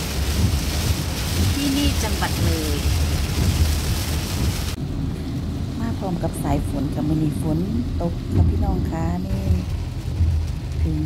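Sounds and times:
car rumbling on wet road: 0.0 - 11.0
heavy rain on a car: 0.0 - 11.0.

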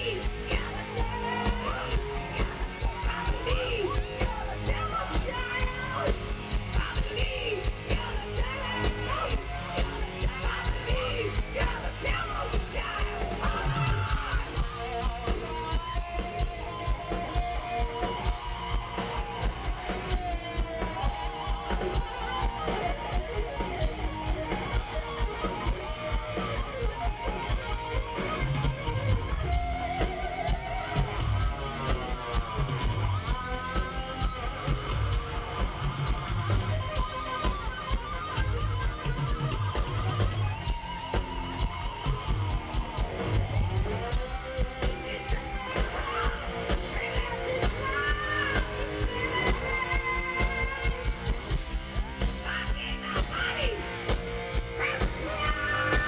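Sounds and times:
bass guitar: 0.0 - 56.0
electric guitar solo: 0.0 - 56.0
heavy metal band playing: 0.0 - 56.0.

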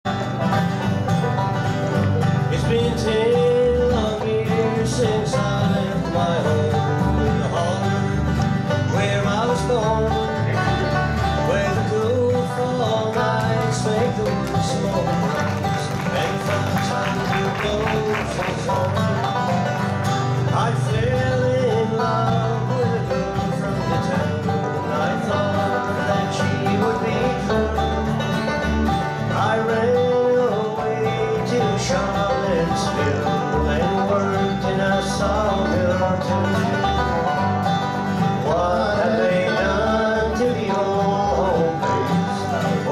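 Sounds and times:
banjo rolls: 0.0 - 42.9
strummed acoustic guitars: 0.0 - 42.9
upright bass: 0.0 - 42.9.

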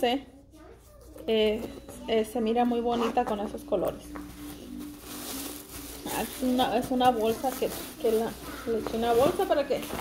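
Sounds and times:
plastic bag rustling and crinkling: 1.2 - 10.0.

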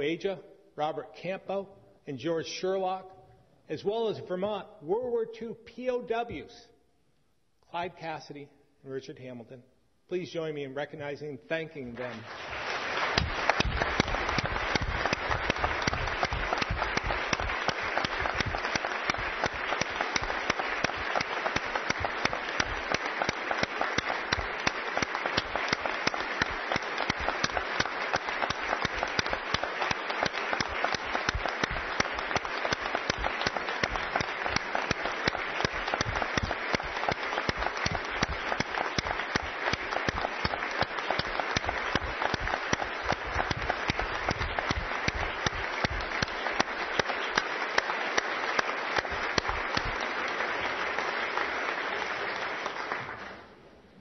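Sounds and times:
crowd applauding: 11.9 - 53.6.

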